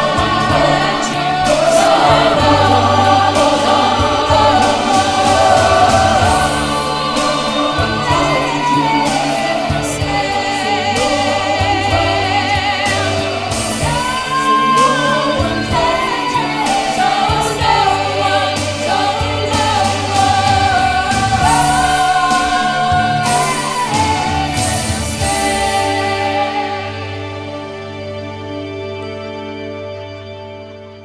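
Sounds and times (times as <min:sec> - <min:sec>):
choir singing in harmony: 0:00.0 - 0:29.9
low accompaniment: 0:00.0 - 0:31.0.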